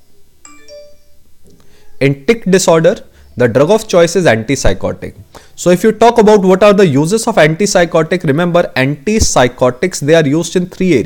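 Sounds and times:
two-note ding-dong chime: 0.4s - 1.2s.

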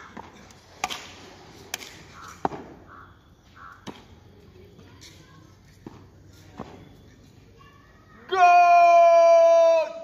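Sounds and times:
crow cawing: 2.2s - 3.9s.

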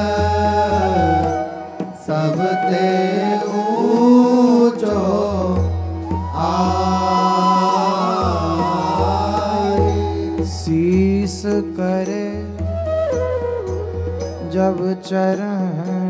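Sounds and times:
men singing devotional chant: 0.0s - 12.4s
harmonium: 0.0s - 16.0s.

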